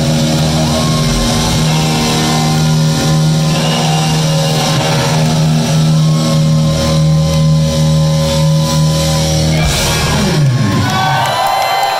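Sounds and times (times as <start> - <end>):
washing cymbals: 0.0 - 10.2
electric guitars sustaining notes: 0.0 - 11.4
drums: 0.0 - 11.9.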